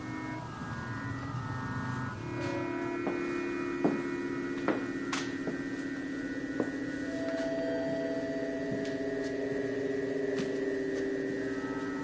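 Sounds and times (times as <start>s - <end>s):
ambient electronic drone: 0.0s - 12.0s
higher electronic tone: 0.0s - 12.0s.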